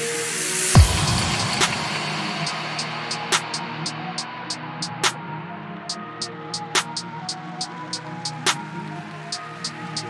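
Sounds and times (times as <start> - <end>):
grime beat: 0.6 - 5.3, 5.9 - 10.0
sharp hit: 0.8 - 4.0.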